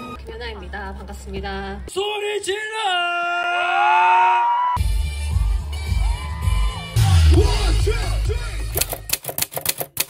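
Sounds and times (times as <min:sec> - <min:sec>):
live concert music with bass: 0:04.8 - 0:08.8
typewriter key clicks: 0:08.7 - 0:10.0.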